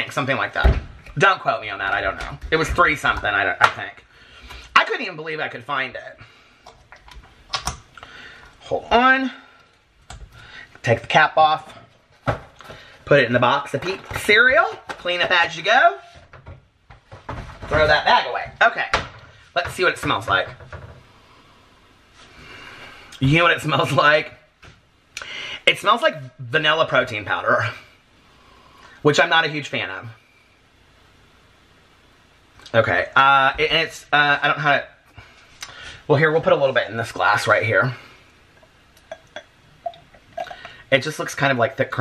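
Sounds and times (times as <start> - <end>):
liquid glugging into glass: 38.6 - 40.8.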